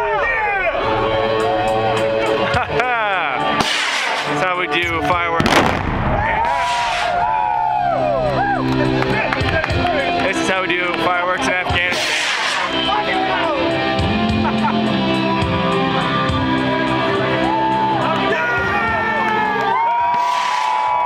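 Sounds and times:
music: 0.0 - 21.0
explosion boom: 5.4 - 7.3.

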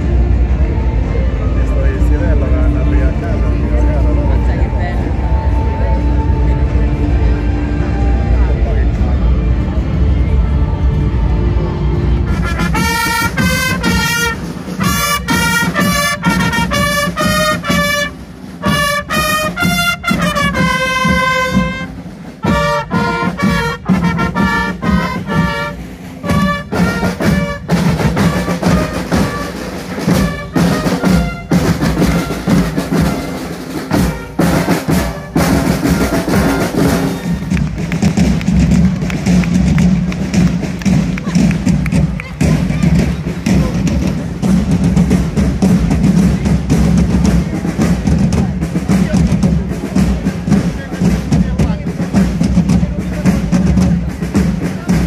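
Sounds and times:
drums beating: 12.1 - 55.0
trumpet fanfare: 12.3 - 38.0.

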